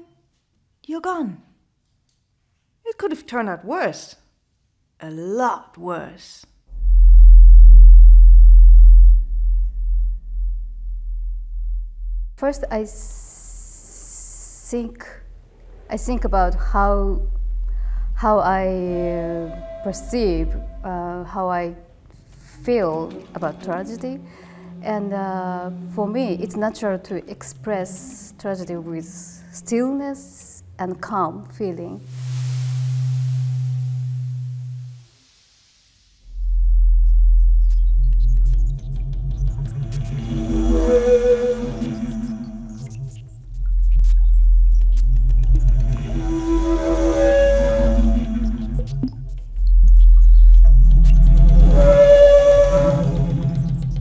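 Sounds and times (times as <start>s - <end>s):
breathy air noise: 6.7s - 12.4s, 17.3s - 18.2s, 21.9s - 27.0s
deep bass drone: 6.7s - 13.8s, 15.3s - 30.6s, 36.2s - 54.0s.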